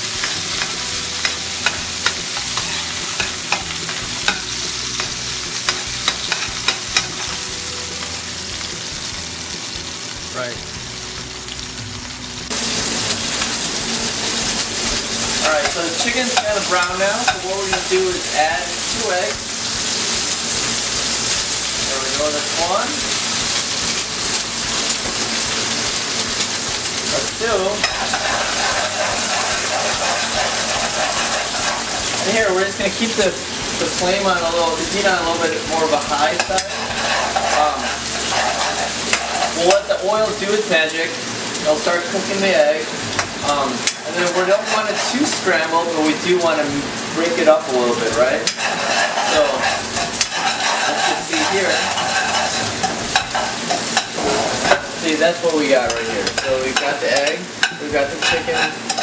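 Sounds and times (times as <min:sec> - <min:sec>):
food sizzling in hot oil: 0:00.0 - 0:59.0
metal spatula clicks and scrapes: 0:00.2 - 0:07.2, 0:27.8 - 0:32.4, 0:36.3 - 0:39.7, 0:48.4 - 0:54.8.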